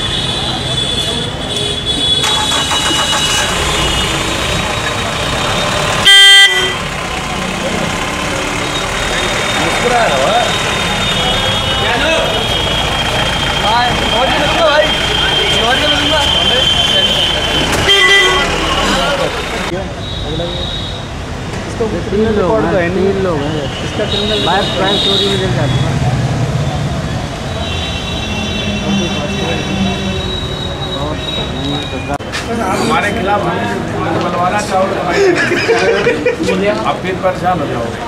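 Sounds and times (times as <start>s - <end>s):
traffic: 0.0s - 38.0s
vehicle horn blast: 6.0s - 6.9s, 14.8s - 18.7s, 27.6s - 31.4s
people talking: 6.6s - 21.0s, 21.6s - 27.7s, 28.7s - 38.0s.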